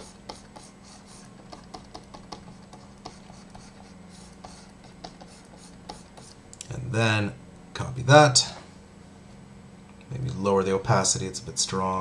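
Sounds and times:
computer mouse clicking and scratching: 0:00.0 - 0:06.4
low steady hum: 0:00.0 - 0:12.0.

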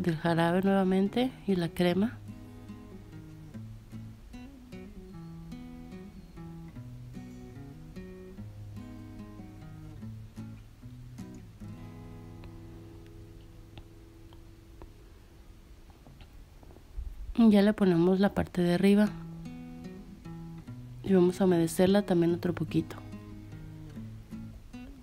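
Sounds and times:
acoustic guitar playing single notes: 0:00.0 - 0:16.2, 0:18.8 - 0:25.0.

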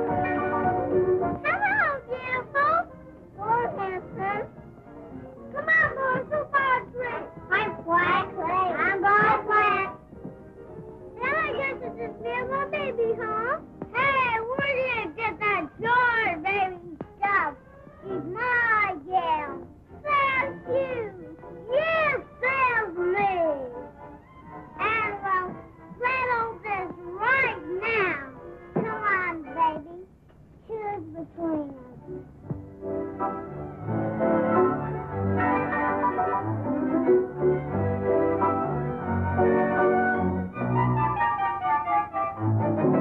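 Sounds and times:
faint background music: 0:00.0 - 0:43.0
child's high voice: 0:01.4 - 0:04.4, 0:05.6 - 0:10.0, 0:11.2 - 0:23.8, 0:24.8 - 0:30.1, 0:30.7 - 0:32.0
toddlers talking sing-song: 0:05.6 - 0:10.0, 0:11.2 - 0:23.8, 0:24.8 - 0:30.1.

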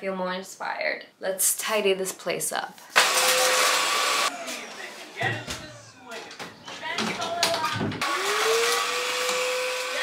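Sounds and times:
vacuum cleaner motor whine: 0:03.0 - 0:06.4, 0:08.0 - 0:10.0.

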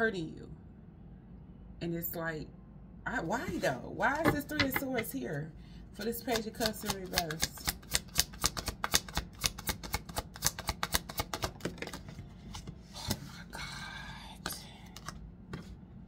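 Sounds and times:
cards being shuffled: 0:06.0 - 0:13.3.

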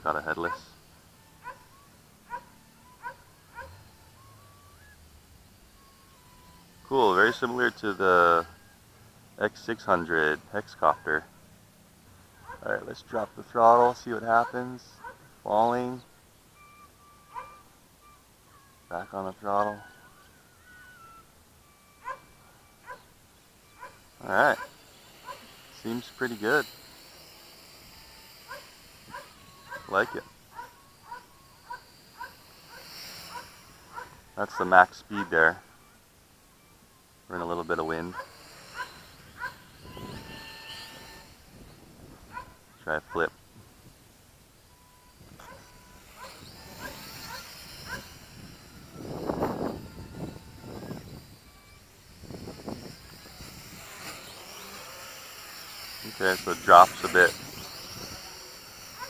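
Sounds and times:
animal calling: 0:00.0 - 0:08.9, 0:10.2 - 0:11.4, 0:13.8 - 0:43.4, 0:44.7 - 0:59.0
drone motors whining: 0:00.0 - 0:59.0.

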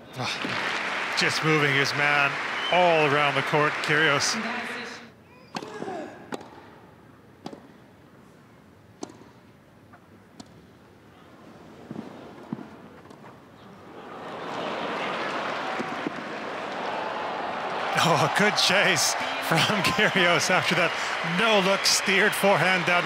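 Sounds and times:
crowd applause and cheering: 0:00.1 - 0:04.8, 0:13.9 - 0:23.0
tennis ball struck: 0:05.6 - 0:06.6, 0:07.4 - 0:07.8, 0:09.0 - 0:09.4.

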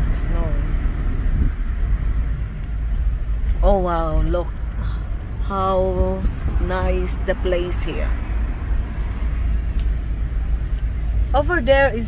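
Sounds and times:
car interior road and engine noise: 0:00.0 - 0:12.0.

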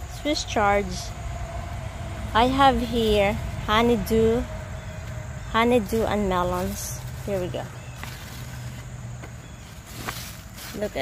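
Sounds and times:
low hum: 0:00.0 - 0:09.9.

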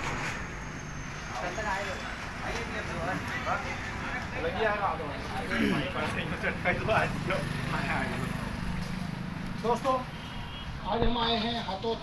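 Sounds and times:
roadside traffic noise: 0:00.0 - 0:12.0.

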